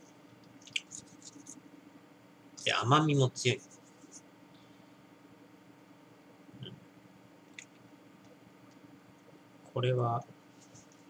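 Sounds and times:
marker scratching on whiteboard: 0.9 - 1.6.

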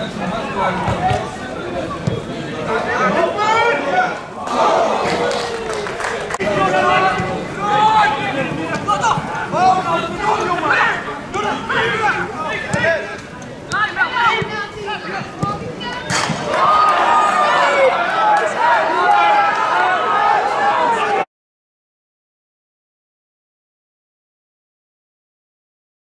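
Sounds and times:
people shouting and calling: 2.7 - 21.3.

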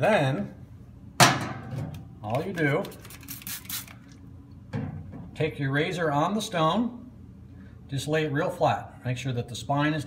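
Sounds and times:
spray bottle spritzing: 2.9 - 4.1.

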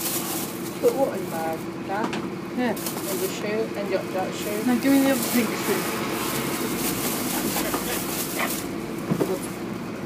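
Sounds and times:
bus engine hum and rumble: 0.0 - 10.0.

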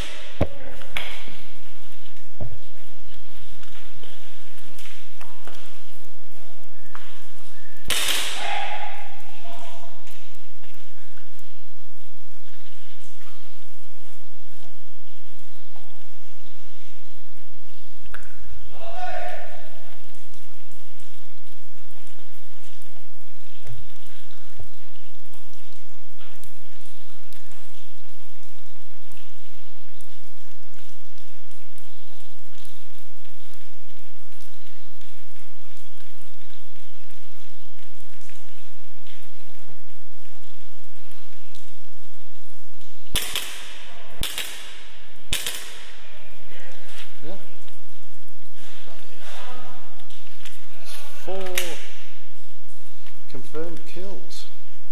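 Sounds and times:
airsoft gun shots: 7.9 - 8.6, 43.2 - 45.9.

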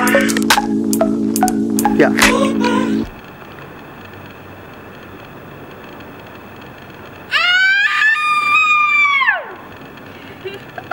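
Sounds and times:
outdoor background noise: 0.0 - 10.9
woman screaming: 7.3 - 9.6.

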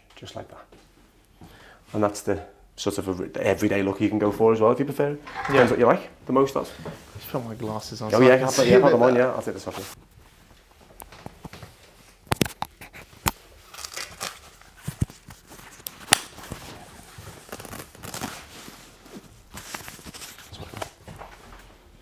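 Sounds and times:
sharp clicks and snaps: 12.2 - 14.2
paper rustling and tearing: 12.4 - 21.0.

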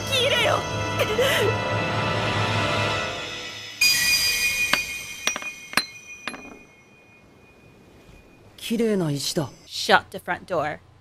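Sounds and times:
glassy chiming ringing: 3.8 - 9.8
sharp glassy clinks: 4.3 - 7.7.

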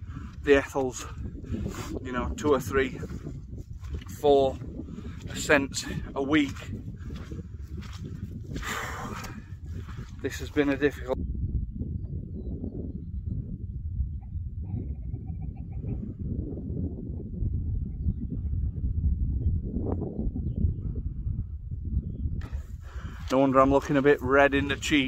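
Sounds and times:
wind rumbling on microphone: 0.0 - 25.0.

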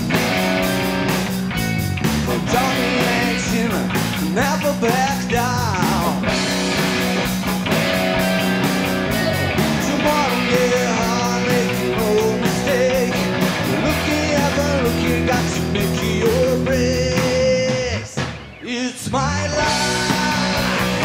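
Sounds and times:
drum kit: 0.0 - 21.0
electric bass: 0.0 - 21.0
electric guitar: 0.0 - 21.0.

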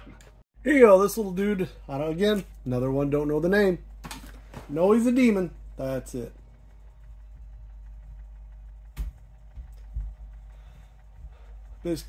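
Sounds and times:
motorized display stand humming: 0.0 - 12.0.

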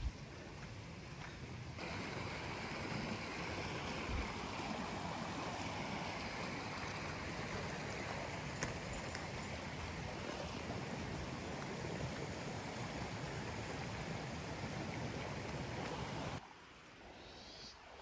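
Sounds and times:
stream water rushing: 0.2 - 17.1.

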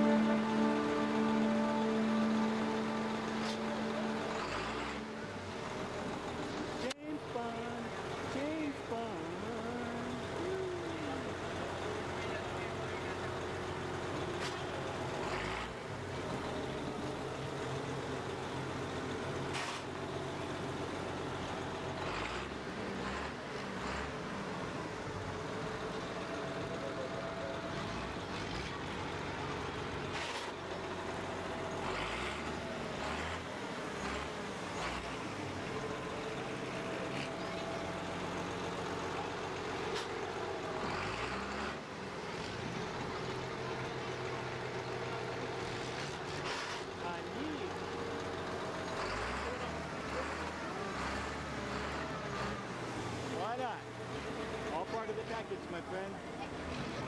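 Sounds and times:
boat engine running: 0.0 - 13.1.

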